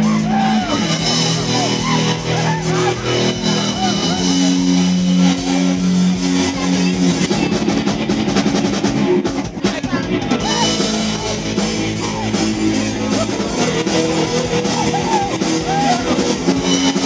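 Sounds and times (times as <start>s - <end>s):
drumming: 0.0s - 17.0s
rock band playing: 0.0s - 17.0s.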